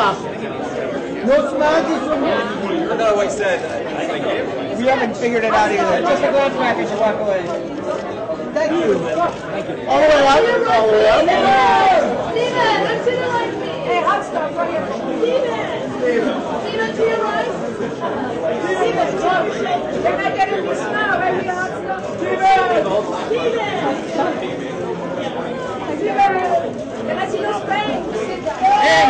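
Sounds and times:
babble of overlapping voices: 0.0s - 29.0s.

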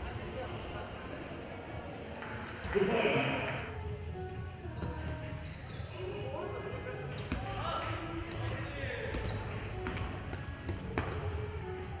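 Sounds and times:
basketball bouncing on wooden floor: 9.1s - 11.2s.

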